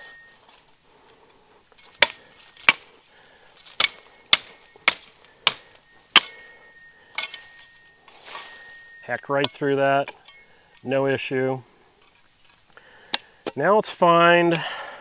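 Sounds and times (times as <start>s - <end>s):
leaves rustling: 0.0s - 14.5s
shovel blade chopping brush: 1.8s - 2.9s, 3.6s - 10.3s.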